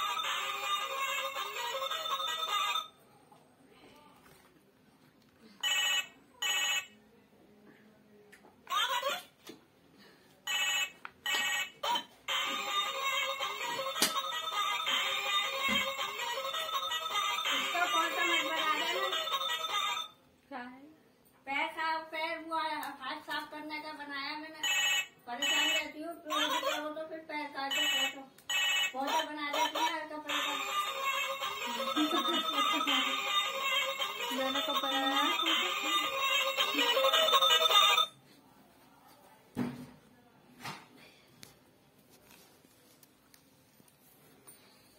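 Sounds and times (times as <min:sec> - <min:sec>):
toy telephone ringing: 0:00.0 - 0:03.0, 0:05.6 - 0:07.0, 0:10.5 - 0:20.2, 0:24.6 - 0:26.8, 0:27.7 - 0:38.2.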